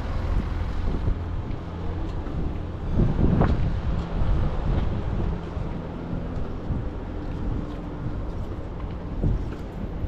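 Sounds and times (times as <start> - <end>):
city traffic rumble: 0.0 - 10.0
wind buffeting microphone: 0.0 - 10.0.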